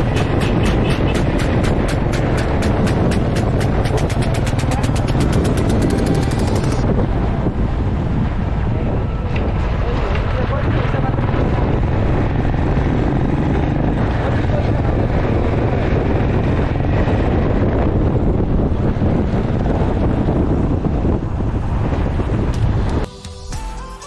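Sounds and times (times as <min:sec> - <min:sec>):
motorcycle engine running: 0:00.0 - 0:07.5, 0:10.8 - 0:23.0
wind buffeting microphone: 0:00.0 - 0:23.1.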